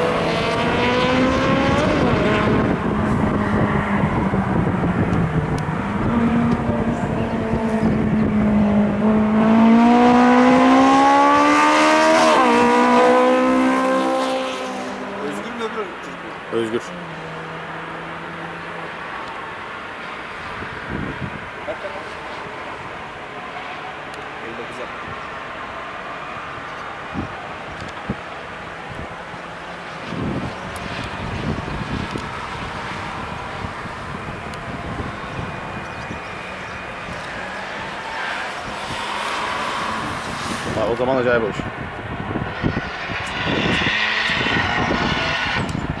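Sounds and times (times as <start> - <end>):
distant race car engines droning: 0.0 - 46.0
race car revving: 0.0 - 46.0.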